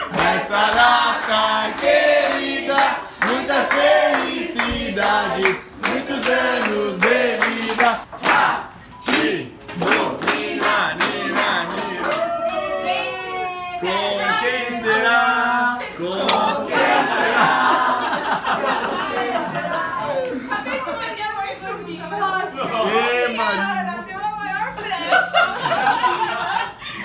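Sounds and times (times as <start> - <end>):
group singing: 0.0 - 20.5
people cheering: 11.7 - 14.2.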